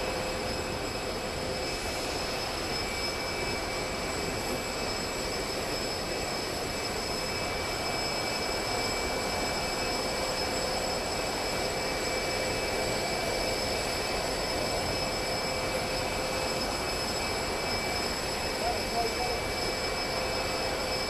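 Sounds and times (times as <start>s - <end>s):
high-pitched jet whine: 0.0s - 21.0s
jet aircraft engine rushing: 0.0s - 21.0s.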